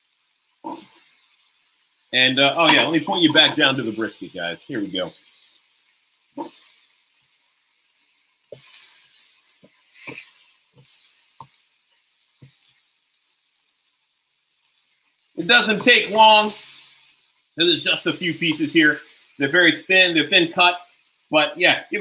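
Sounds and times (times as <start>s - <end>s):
meat sizzling on griddle: 0.0s - 22.0s.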